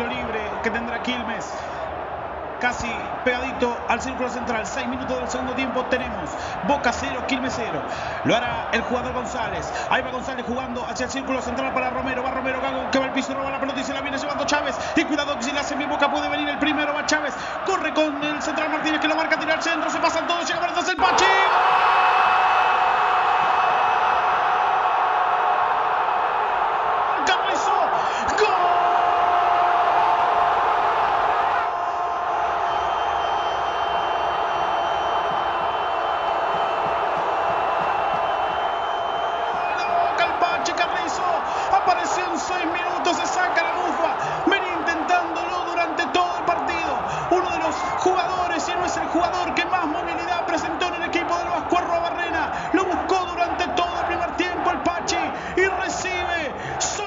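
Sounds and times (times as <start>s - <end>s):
stadium crowd roaring: 0.0s - 57.0s.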